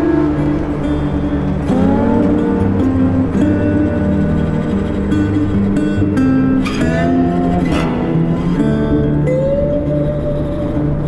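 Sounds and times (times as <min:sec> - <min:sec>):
background music: 0:00.0 - 0:11.0
motorcycle engine accelerating: 0:00.0 - 0:11.0.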